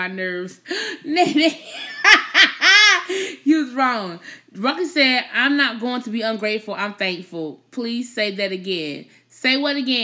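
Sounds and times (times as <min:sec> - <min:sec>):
woman laughing loudly: 0:01.2 - 0:03.4.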